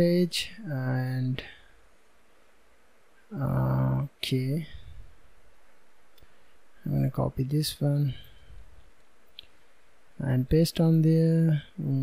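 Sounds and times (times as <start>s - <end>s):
person speaking: 0.0s - 1.6s, 3.3s - 5.0s, 6.8s - 8.5s, 10.2s - 12.0s.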